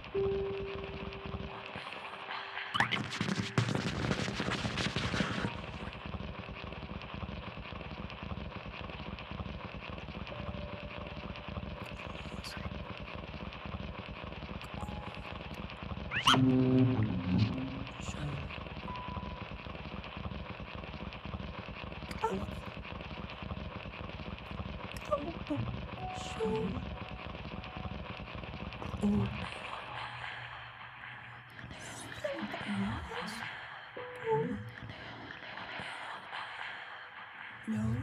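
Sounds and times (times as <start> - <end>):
experimental piano and voice music: 0.0 - 7.7, 9.9 - 20.5, 21.9 - 23.7, 24.4 - 38.0.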